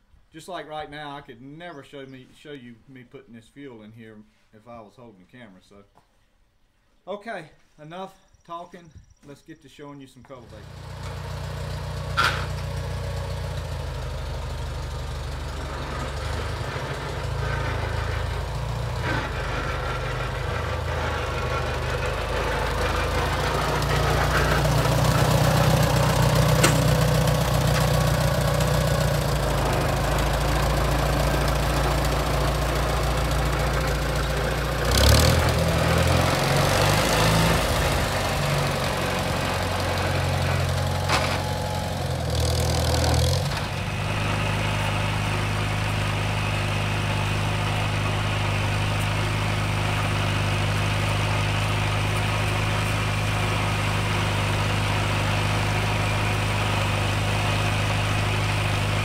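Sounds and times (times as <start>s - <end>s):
tractor engine running: 10.3s - 59.0s.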